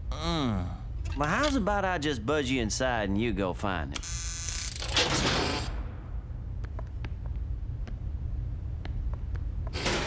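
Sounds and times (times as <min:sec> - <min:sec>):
low steady hum: 0:00.0 - 0:04.6, 0:05.6 - 0:10.0.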